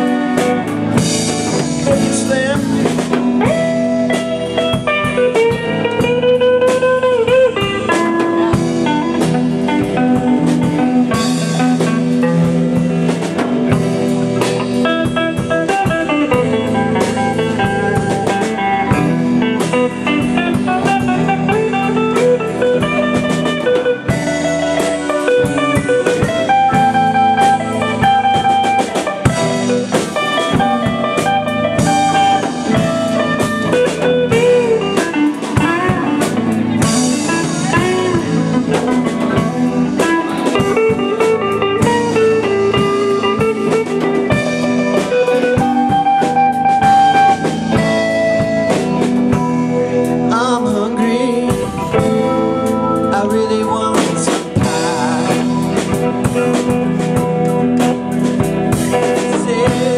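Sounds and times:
drum kit steady beat: 0.0s - 59.9s
electric guitars bending notes: 0.0s - 59.9s.

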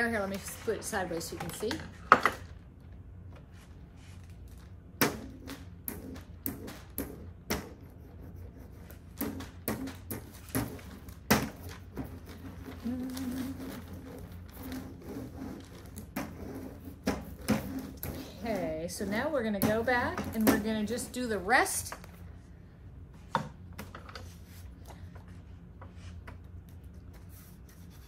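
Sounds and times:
roller on paper clicking and rustling: 0.0s - 2.6s, 8.8s - 20.6s.

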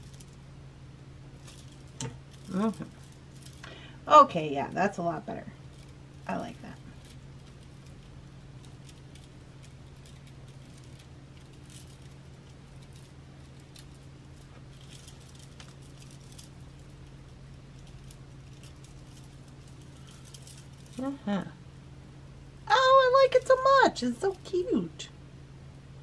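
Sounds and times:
beads clicking and rattling: 0.0s - 0.4s, 1.3s - 3.8s, 5.6s - 21.2s
steady low hum: 0.0s - 26.0s.

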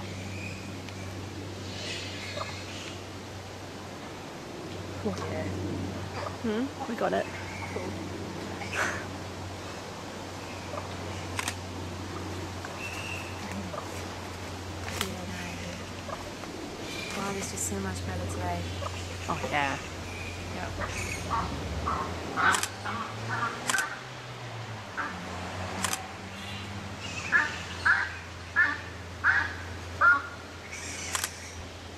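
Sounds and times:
flying foxes chattering: 0.0s - 3.2s, 5.1s - 9.4s, 10.4s - 24.0s, 25.8s - 31.6s
steady low hum: 0.0s - 31.9s
camera shutter click: 22.5s - 22.8s, 23.6s - 23.9s, 25.8s - 26.0s, 31.1s - 31.4s
sharp click: 23.6s - 23.9s.

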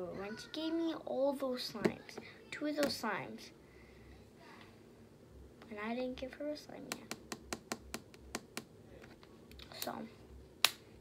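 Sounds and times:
fingernails tapping on wood: 6.9s - 8.7s.

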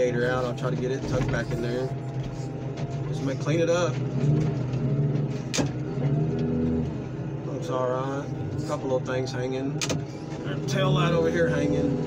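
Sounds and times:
hydraulic power unit running: 0.0s - 12.0s.

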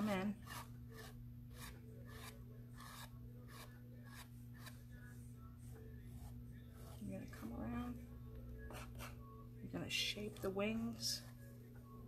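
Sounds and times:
palette knife scraping canvas: 0.0s - 5.1s.

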